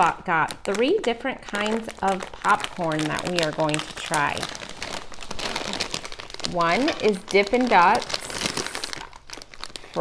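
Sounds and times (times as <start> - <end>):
plastic snack bag crinkling: 0.0 - 10.0.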